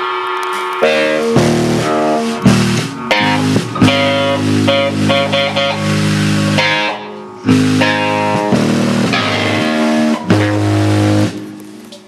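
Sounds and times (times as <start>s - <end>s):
rock band playing: 0.4s - 12.0s
drum and cymbal hit: 0.5s - 11.6s.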